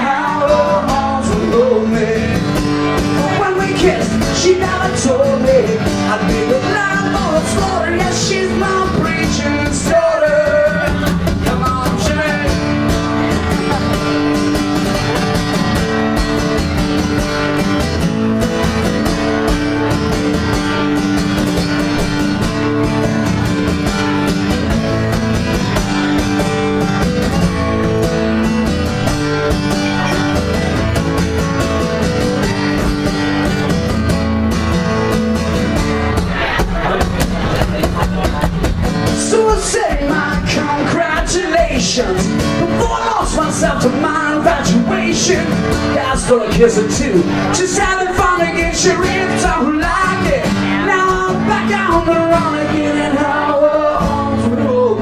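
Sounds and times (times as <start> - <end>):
person singing: 0.0 - 15.8, 35.8 - 55.0
guitar strumming: 0.0 - 55.0.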